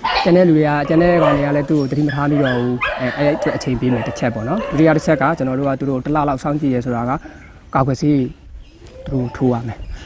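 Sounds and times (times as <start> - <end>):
man speaking: 0.3 - 7.2, 9.0 - 9.8.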